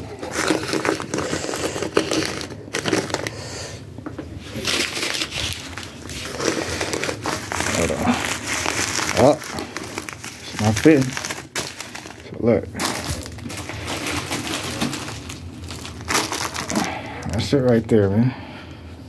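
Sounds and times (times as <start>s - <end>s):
plastic packets crinkling: 0.0s - 3.7s, 4.4s - 17.9s
person speaking: 7.6s - 11.3s.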